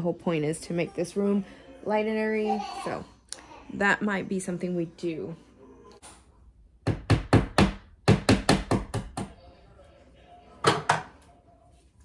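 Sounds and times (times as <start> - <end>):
hammer tapping a nail: 6.8 - 9.3.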